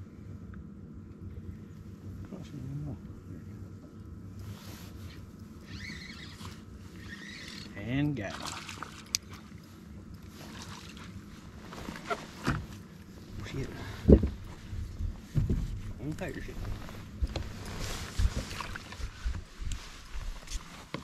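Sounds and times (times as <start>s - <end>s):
electric trolling motor humming: 5.0s - 8.1s.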